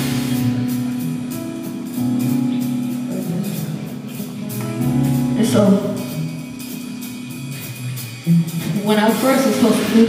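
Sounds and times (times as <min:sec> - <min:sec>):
bass notes: 0:00.0 - 0:10.0
held keyboard chord: 0:00.0 - 0:10.0.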